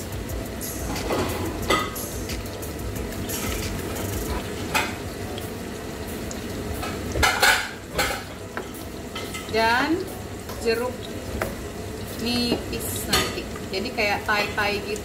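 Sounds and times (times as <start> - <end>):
food sizzling in pans: 0.0 - 15.0.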